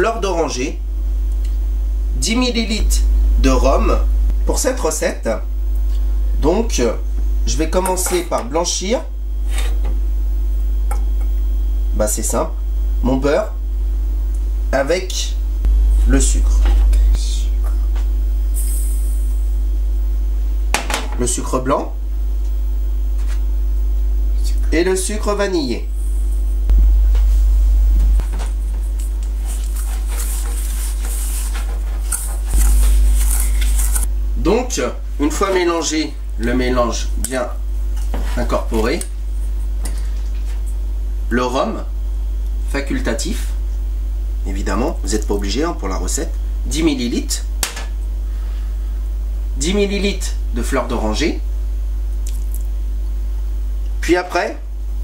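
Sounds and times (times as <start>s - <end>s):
low electrical hum: 0.0s - 55.0s.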